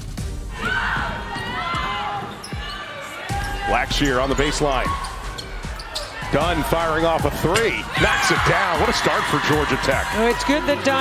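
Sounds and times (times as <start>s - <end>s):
arena crowd noise: 0.4s - 11.0s.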